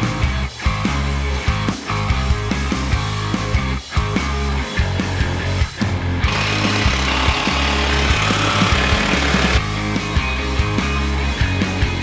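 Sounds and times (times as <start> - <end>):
rock music: 0.0 - 12.0
cordless drill driving a screw: 6.3 - 9.6.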